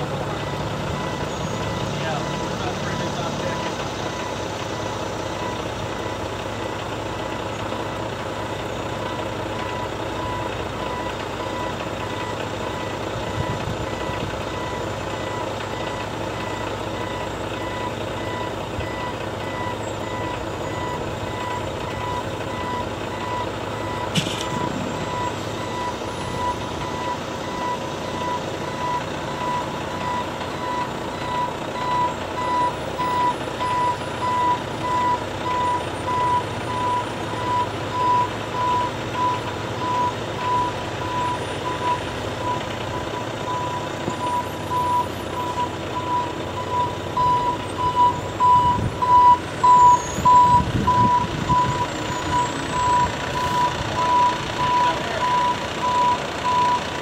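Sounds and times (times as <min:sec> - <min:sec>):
truck engine running: 0:00.0 - 0:57.0
truck reversing alarm beeping: 0:00.0 - 0:57.0.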